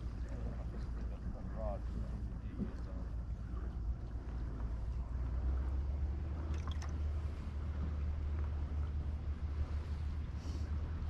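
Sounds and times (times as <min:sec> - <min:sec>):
water lapping at dock: 0:00.0 - 0:11.0
wind rumbling on microphone: 0:00.0 - 0:11.0.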